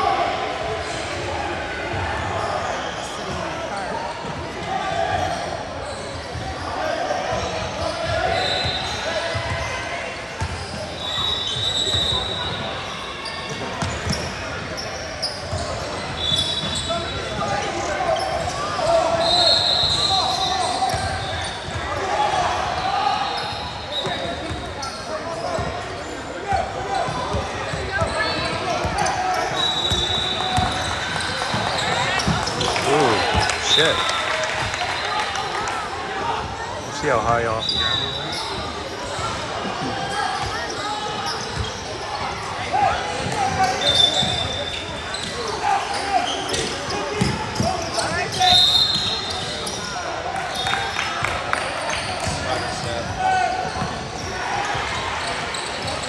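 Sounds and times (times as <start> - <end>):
murmur of many voices: 0.0 - 56.0
sneaker squeaks: 1.9 - 35.3, 36.2 - 56.0.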